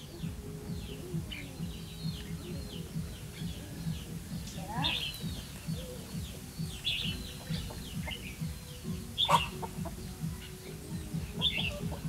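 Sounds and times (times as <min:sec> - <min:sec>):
birds singing bright phrases: 0:00.0 - 0:12.0
low regular throbbing: 0:00.0 - 0:12.0.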